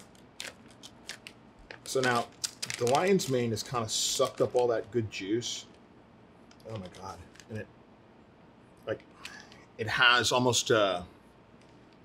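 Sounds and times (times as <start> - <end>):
plastic bag crinkling: 0.0 - 5.6.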